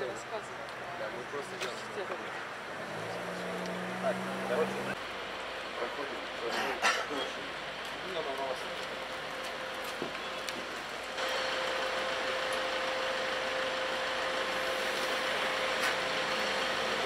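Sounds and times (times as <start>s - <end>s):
motor vehicle idling: 0.8s - 17.0s.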